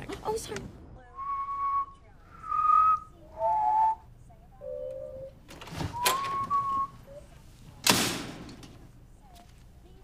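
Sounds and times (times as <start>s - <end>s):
person whistling: 1.2s - 4.0s, 5.9s - 7.0s.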